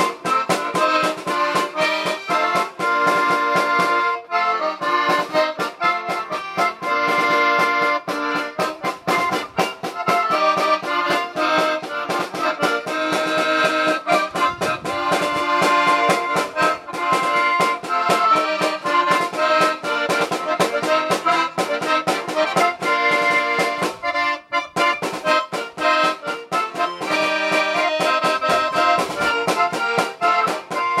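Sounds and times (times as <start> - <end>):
snare drum beat: 0.0 - 4.0, 4.8 - 24.1, 24.8 - 31.0
accordion polka melody: 0.0 - 31.0.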